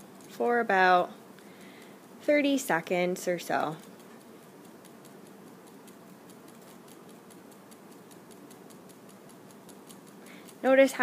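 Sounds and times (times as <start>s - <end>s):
faint even ticking: 3.7s - 10.9s.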